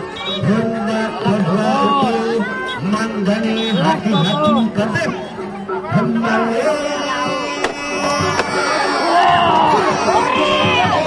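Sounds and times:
crowd voices: 0.0s - 11.0s.

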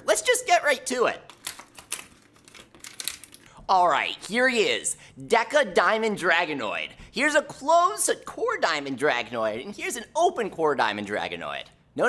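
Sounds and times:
plastic blister pack tearing: 1.3s - 3.5s.

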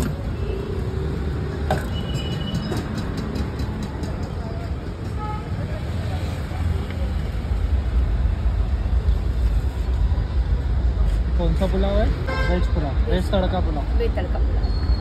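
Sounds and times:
street traffic rumbling: 0.0s - 15.0s.

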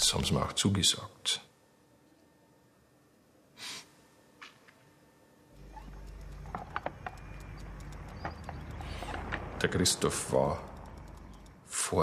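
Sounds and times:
steady low hum: 0.0s - 12.0s
birds: 5.6s - 11.6s
bicycle clicks: 5.6s - 11.8s.

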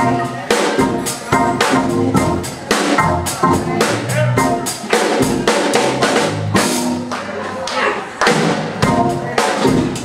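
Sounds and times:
jazz combo playing: 0.0s - 7.2s, 8.4s - 10.0s.

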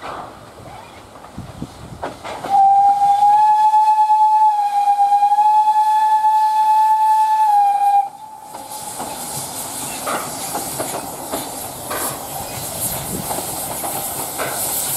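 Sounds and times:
steam hiss: 0.0s - 14.9s
steam whistle blast: 2.4s - 8.8s.

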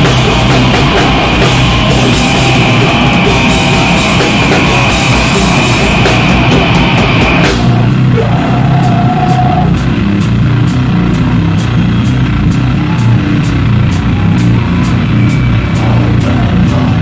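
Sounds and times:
live heavy rock band: 0.0s - 17.0s.

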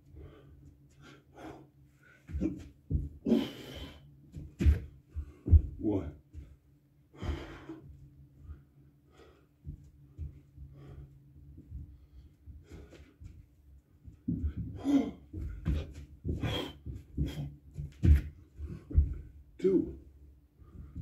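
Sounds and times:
man breathing hard: 0.0s - 4.2s, 6.4s - 13.4s, 14.2s - 17.6s, 20.5s - 21.0s
thumps of landings on mat: 4.4s - 4.9s.

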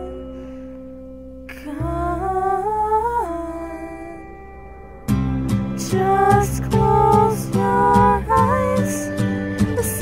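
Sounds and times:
woman humming: 5.8s - 10.0s.

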